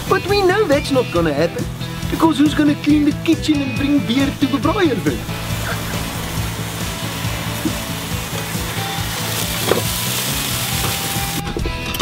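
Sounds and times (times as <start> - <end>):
sausage sizzling over coals: 0.0 - 11.6
background music with low notes: 0.0 - 12.0.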